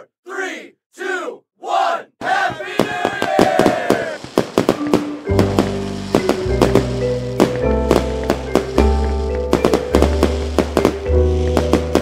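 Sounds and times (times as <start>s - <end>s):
crowd shouting countdown: 0.0s - 4.2s
crowd cheering: 0.3s - 4.2s
fireworks crackling and banging: 2.5s - 12.0s
music: 4.7s - 12.0s.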